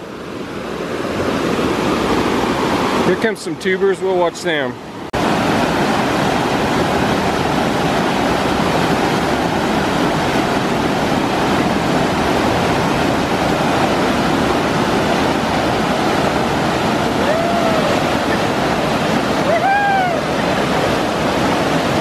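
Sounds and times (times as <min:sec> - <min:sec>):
water rushing over boulders: 0:00.0 - 0:22.0.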